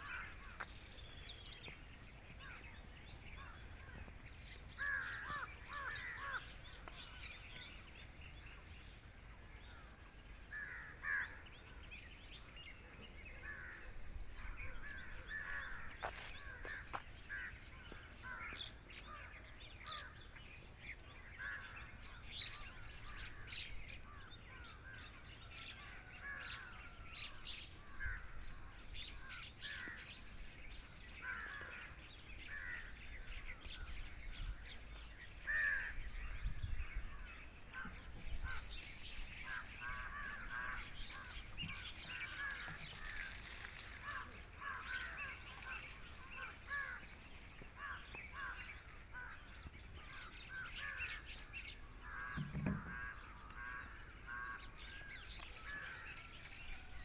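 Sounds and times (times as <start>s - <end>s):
birds chirping and calling: 0.0s - 57.0s.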